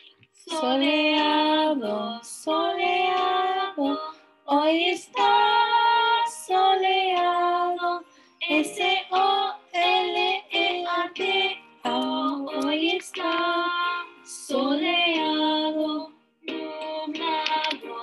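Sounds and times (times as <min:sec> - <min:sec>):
light instrumental backing: 0:00.0 - 0:18.0
children singing: 0:00.5 - 0:04.1, 0:04.7 - 0:18.0
woman singing: 0:00.5 - 0:18.0.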